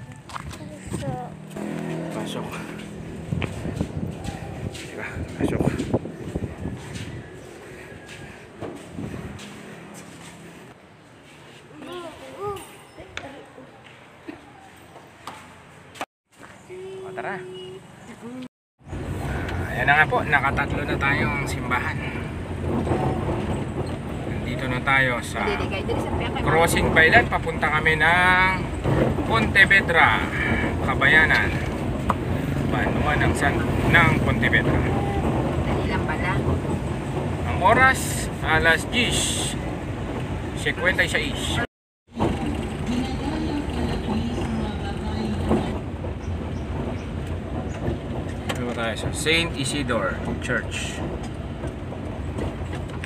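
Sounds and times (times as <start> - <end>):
car engine and road rumble: 0.0 - 11.2, 16.6 - 53.0.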